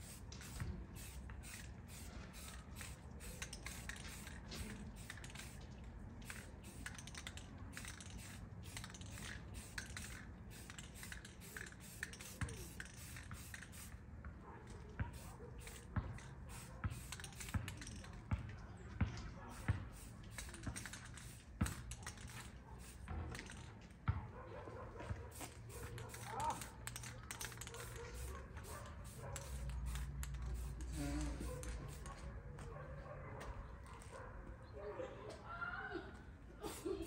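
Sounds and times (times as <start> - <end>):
aerosol spray can hissing: 0.0 - 5.6, 7.8 - 13.9, 16.5 - 17.5, 29.0 - 32.0
clicks from handling spray can: 0.1 - 14.0, 15.1 - 18.2, 20.0 - 23.7, 25.4 - 32.2.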